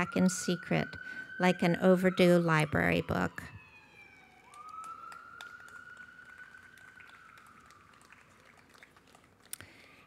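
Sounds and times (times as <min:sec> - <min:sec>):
faint distant siren wailing: 0:00.0 - 0:10.0.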